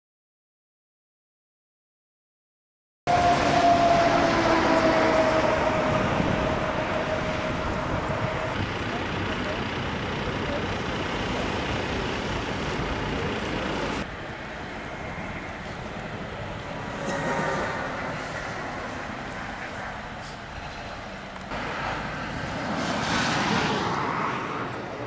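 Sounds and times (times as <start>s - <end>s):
road traffic noise: 3.1s - 25.0s
vehicle passing: 3.1s - 25.0s.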